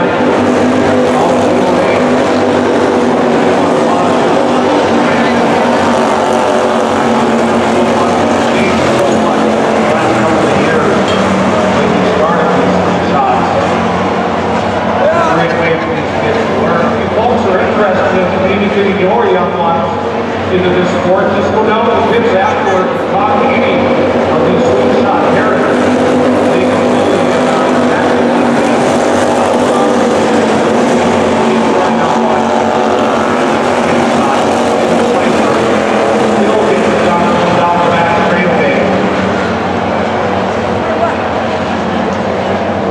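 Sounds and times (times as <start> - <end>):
indistinct voices: 0.0 - 2.4, 3.0 - 42.9
race car engines revving and passing: 0.0 - 42.9.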